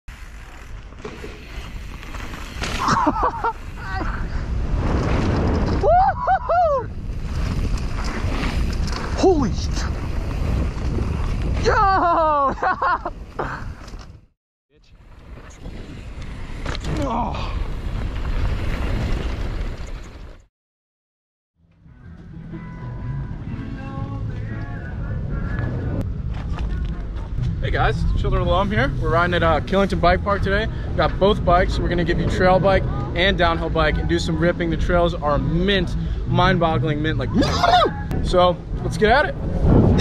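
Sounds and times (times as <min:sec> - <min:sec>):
bike tyres rolling on dirt: 0:00.1 - 0:20.5, 0:24.4 - 0:36.7
wind buffeting microphone: 0:03.7 - 0:11.9, 0:38.0 - 0:40.0
low rumble: 0:22.2 - 0:40.0.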